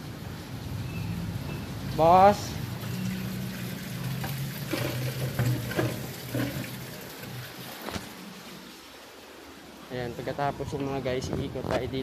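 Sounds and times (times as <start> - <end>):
running water: 0.0 - 12.0
pump motor humming: 2.6 - 8.8.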